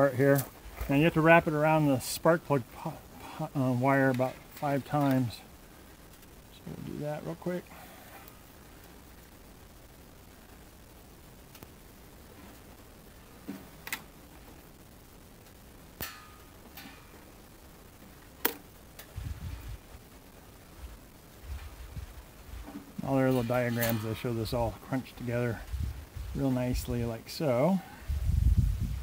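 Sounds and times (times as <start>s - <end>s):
hands wrapping wire: 16.0s - 17.3s.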